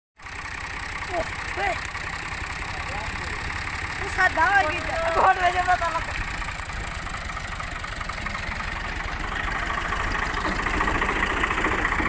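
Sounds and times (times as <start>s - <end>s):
tractor diesel engine chugging: 0.2s - 12.0s.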